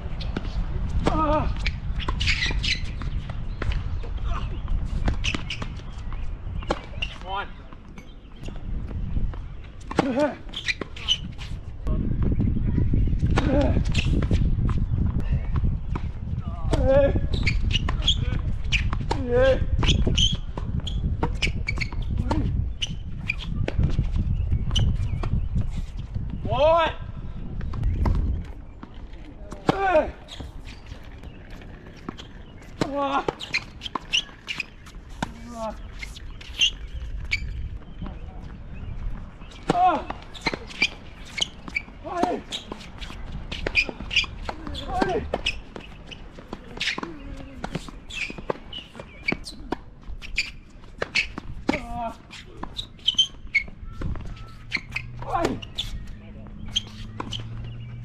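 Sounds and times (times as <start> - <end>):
wind rumble on microphone: 0.0 - 33.8, 35.0 - 46.3, 51.3 - 58.0
tennis ball bounces: 39.4 - 58.0.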